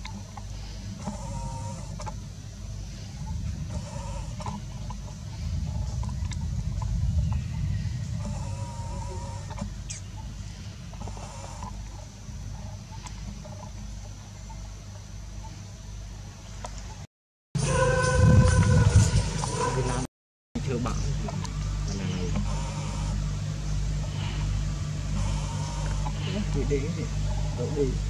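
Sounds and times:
low rumble: 0.0s - 16.2s, 17.6s - 28.0s.

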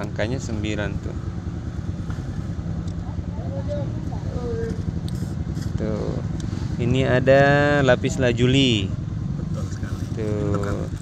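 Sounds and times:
low rumble of traffic: 0.0s - 11.0s.

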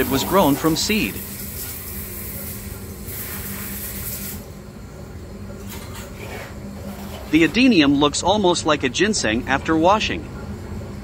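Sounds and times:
water spraying into plastic pot: 0.0s - 4.5s
steady low hum: 0.0s - 11.0s.

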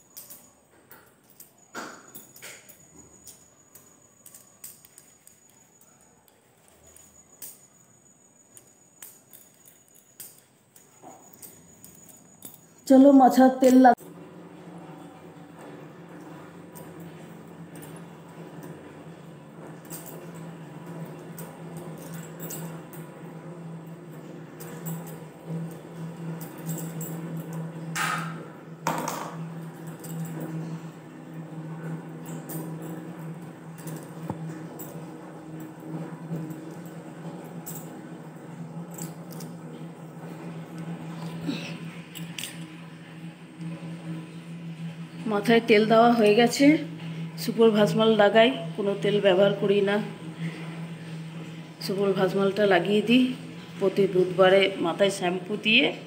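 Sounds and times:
bangles clinking: 0.0s - 13.9s, 19.8s - 23.2s, 28.9s - 30.6s.

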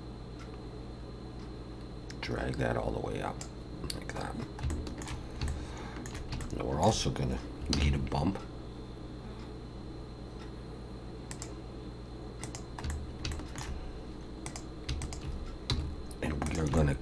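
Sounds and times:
low electrical hum: 0.0s - 17.0s
keyboard and mouse clicks: 3.4s - 6.6s, 7.6s - 8.0s, 11.3s - 11.6s, 12.4s - 13.8s, 14.4s - 17.0s.

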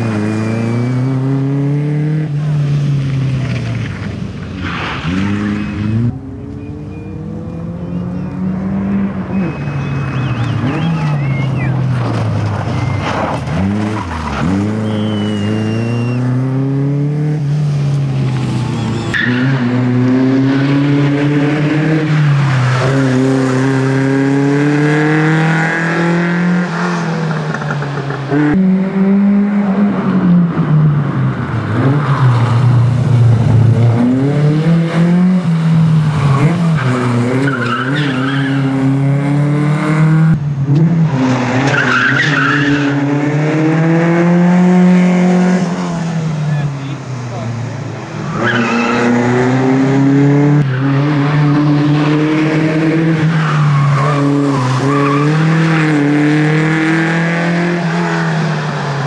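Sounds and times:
rally car engines revving: 0.0s - 59.0s
tyres squealing: 9.3s - 16.2s.

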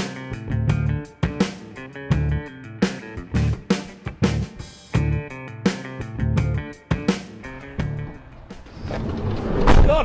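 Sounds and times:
van sliding door slamming shut: 7.5s - 10.0s.

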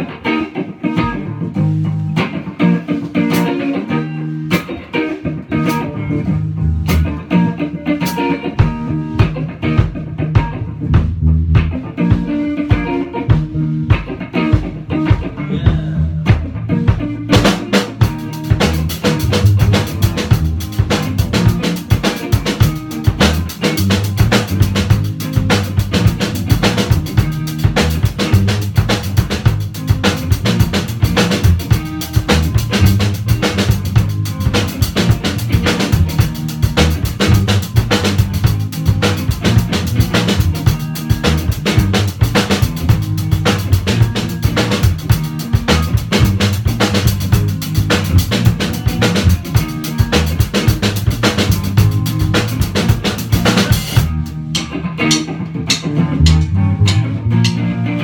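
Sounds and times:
bass guitar: 0.0s - 58.0s
electric guitar: 0.0s - 58.0s
drum kit with cymbals: 1.1s - 57.7s
person counting in: 15.4s - 16.5s.

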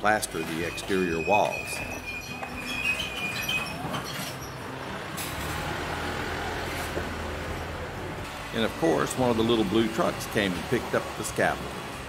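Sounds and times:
street traffic noise: 0.0s - 12.0s
vehicle engine rumbling: 0.0s - 12.0s.

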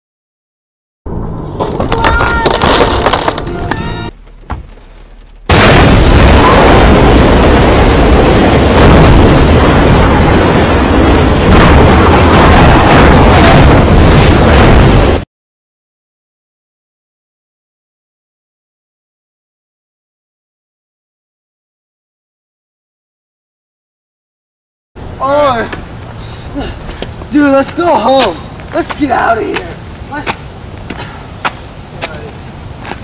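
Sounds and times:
crashing din: 1.5s - 3.8s, 4.4s - 15.2s.

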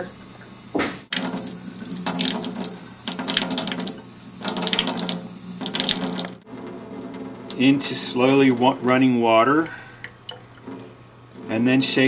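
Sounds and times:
tap water running into sink: 0.0s - 11.6s.

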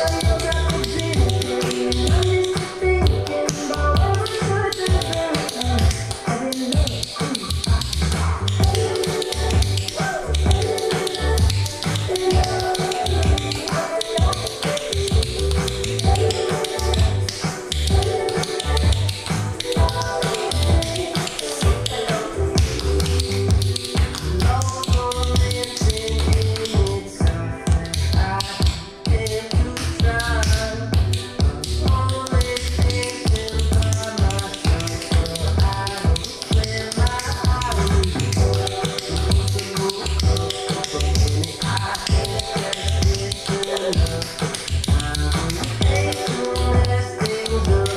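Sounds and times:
pop song with singing: 0.0s - 47.9s
tap shoes on hard floor: 0.2s - 47.9s.

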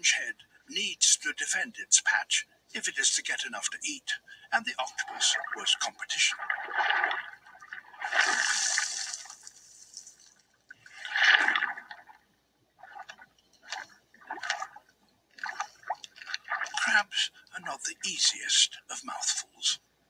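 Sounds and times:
water splashing: 4.7s - 12.2s, 12.8s - 17.2s
water rushing and swirling: 4.8s - 12.2s, 12.8s - 17.0s.

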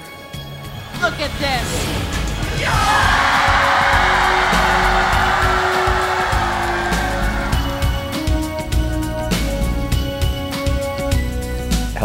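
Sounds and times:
background music with steady beat: 0.0s - 12.0s
crowd cheering and yelling: 2.6s - 8.7s.

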